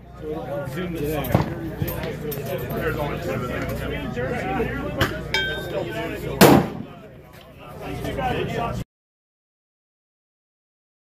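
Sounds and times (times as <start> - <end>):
people talking: 0.0 - 8.8
sharp gunshots: 6.4 - 7.0.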